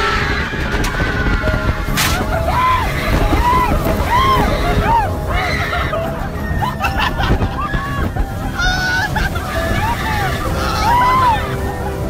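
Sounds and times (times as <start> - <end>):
ride passengers whooping: 0.0 - 12.0.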